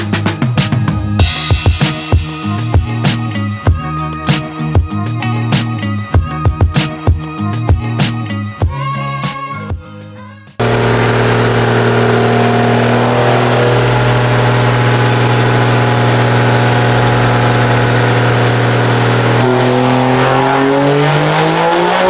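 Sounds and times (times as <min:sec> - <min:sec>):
music: 0:00.0 - 0:12.1, 0:13.2 - 0:22.0
diesel engine running loud: 0:10.6 - 0:22.0.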